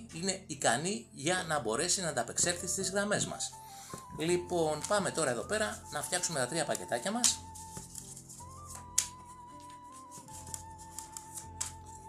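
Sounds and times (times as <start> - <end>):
soft background music: 0.0 - 12.0
cards being shuffled: 3.9 - 12.0.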